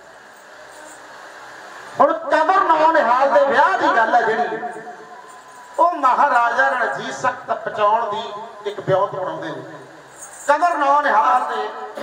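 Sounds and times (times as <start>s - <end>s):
low sound system hiss: 0.0s - 12.0s.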